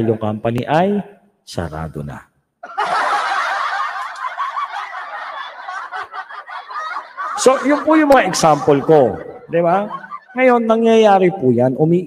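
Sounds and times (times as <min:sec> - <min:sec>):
group laughter: 0:02.6 - 0:10.9.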